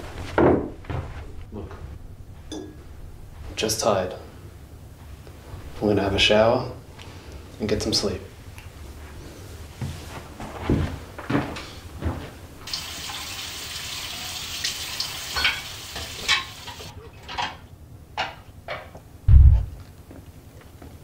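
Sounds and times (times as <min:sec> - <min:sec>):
dishes clinking: 0:02.5 - 0:02.8, 0:15.3 - 0:17.6
heavy low thump: 0:19.3 - 0:19.8.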